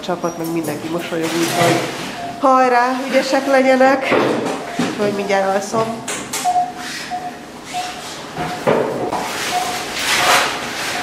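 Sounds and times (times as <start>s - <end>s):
patient monitor beeping: 0.0s - 11.0s.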